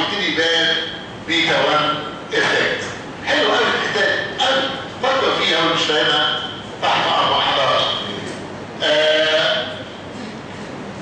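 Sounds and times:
lecture hall noise: 0.0s - 11.0s
man holding drawn-out vowel: 8.8s - 9.9s.

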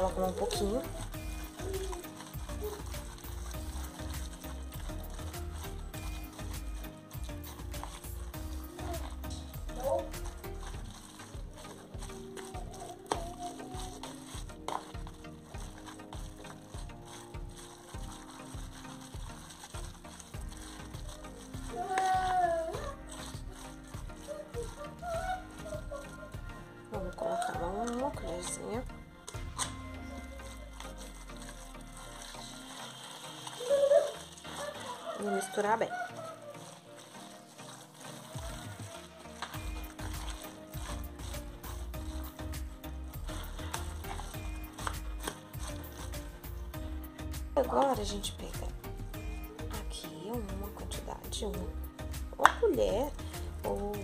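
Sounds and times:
fork scraping a plastic bowl: 0.0s - 54.0s.

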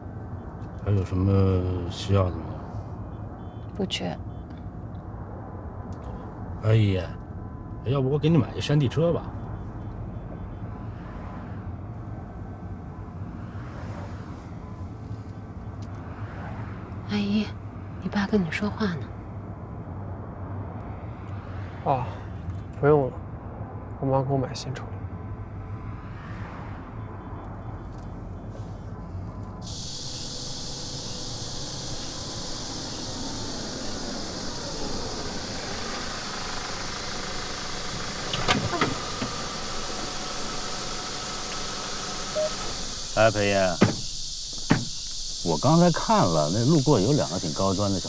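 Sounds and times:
car road and engine noise: 0.0s - 48.0s
hiss: 29.6s - 48.0s.

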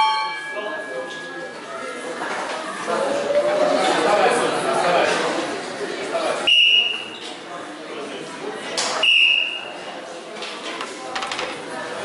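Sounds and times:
high ringing bell tone: 0.0s - 1.7s
crowd chatter echoing: 0.0s - 12.0s.

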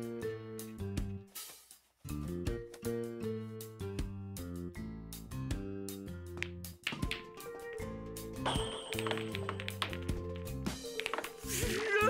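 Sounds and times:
background music: 0.0s - 12.0s
cue stick striking ball: 6.4s - 7.9s, 8.5s - 11.5s
pool balls clicking together: 6.4s - 11.8s.

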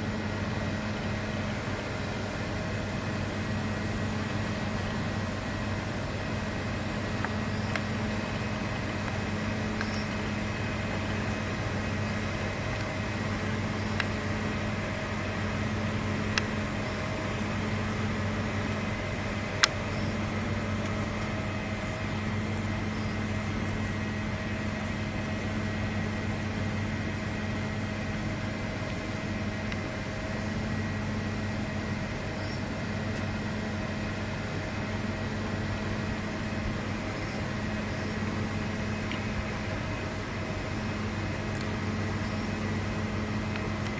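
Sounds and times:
mechanical hum with low drone: 0.0s - 43.9s.

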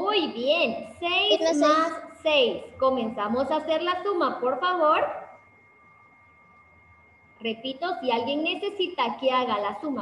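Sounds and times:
woman speaking: 0.0s - 5.4s, 7.4s - 10.0s
faint high microphone hum: 0.0s - 10.0s
low background noise: 0.0s - 10.0s.

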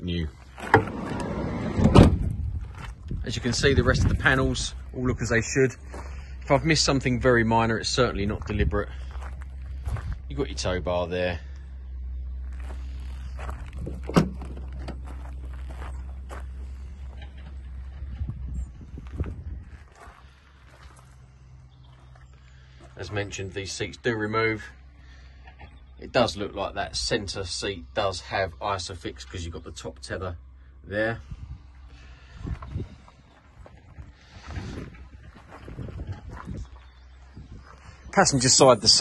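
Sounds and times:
faint footsteps: 0.3s - 1.5s, 2.1s - 10.8s, 11.4s - 23.5s, 31.6s - 38.7s
low handling bumps: 0.4s - 27.7s
thuds: 1.8s - 2.8s.

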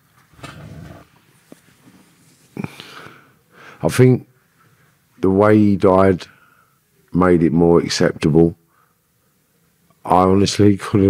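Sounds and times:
man breathing out: 2.6s - 3.8s.

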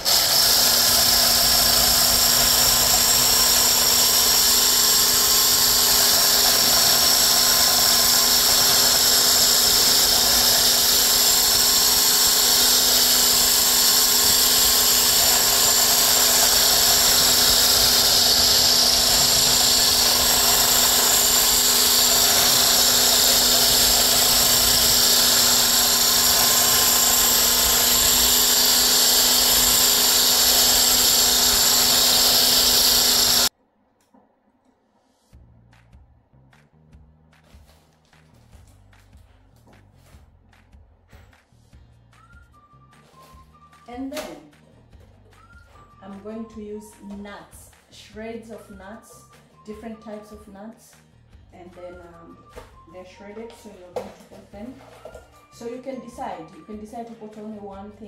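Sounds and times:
electric hand blender whine: 0.0s - 33.5s.

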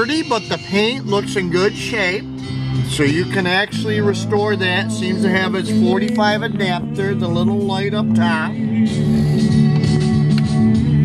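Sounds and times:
music from radio speakers: 0.0s - 11.0s.

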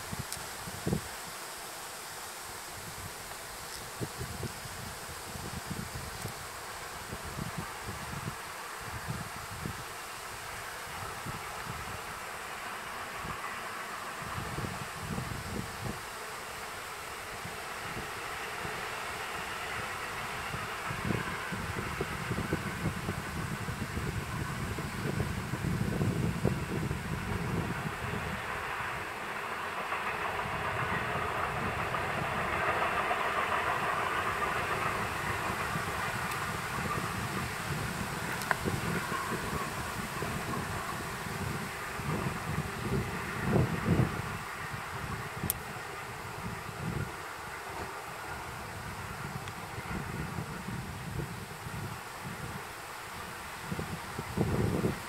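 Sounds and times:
distant freight train rumbling: 0.0s - 55.0s
wind on microphone: 2.7s - 10.0s, 14.2s - 16.1s, 19.7s - 29.1s, 30.2s - 55.0s.

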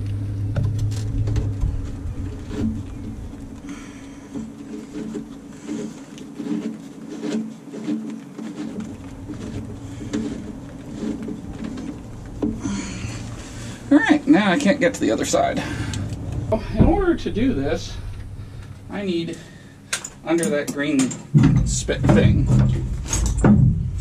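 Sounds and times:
metal clicks and scrapes: 0.0s - 24.0s.

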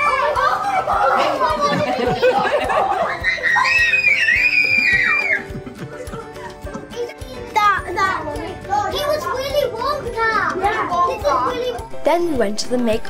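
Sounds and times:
children shrieking and laughing: 0.0s - 12.0s
background music: 0.0s - 13.0s.

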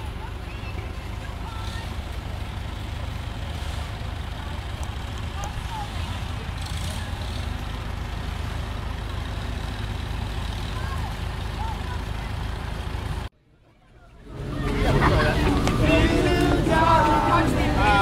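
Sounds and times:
tractor engine running: 0.0s - 18.0s
faint crowd voices: 10.6s - 18.0s.

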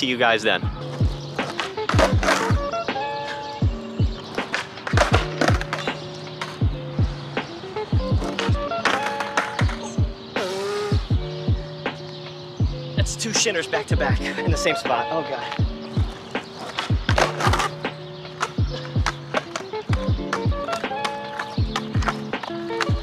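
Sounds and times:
background music with steady beat: 0.0s - 23.0s
skateboard clattering on asphalt: 0.9s - 10.9s, 15.1s - 23.0s.

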